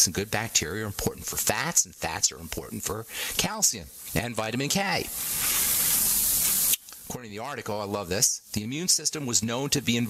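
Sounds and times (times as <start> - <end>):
loud steady hiss: 0.0 - 10.0.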